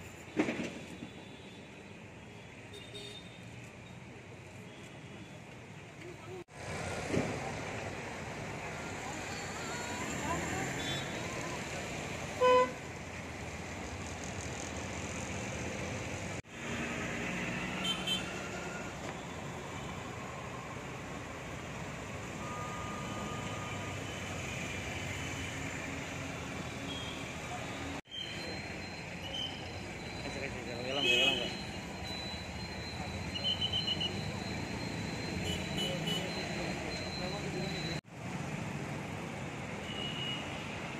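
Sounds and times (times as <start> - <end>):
traffic noise: 0.0 - 40.9
vehicle horn honking: 12.4 - 12.8.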